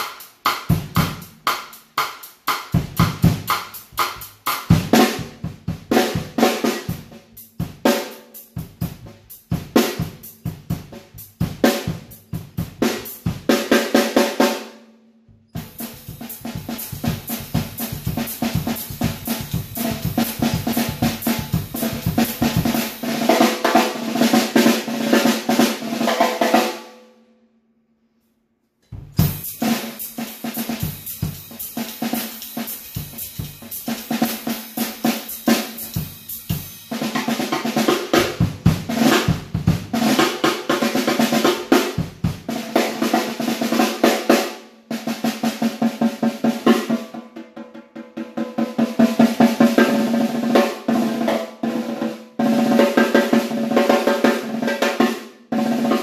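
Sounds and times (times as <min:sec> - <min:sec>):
snare drum strokes and rolls: 0:00.0 - 0:14.8, 0:15.5 - 0:26.8, 0:29.0 - 0:47.1, 0:48.2 - 0:56.0.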